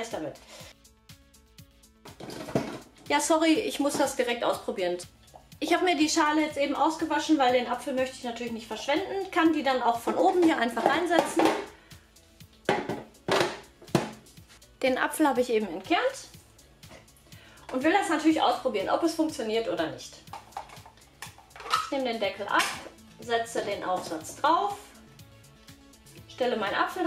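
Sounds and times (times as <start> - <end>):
soft background music: 0.0 - 27.0
plastic parts clattering: 20.4 - 21.9.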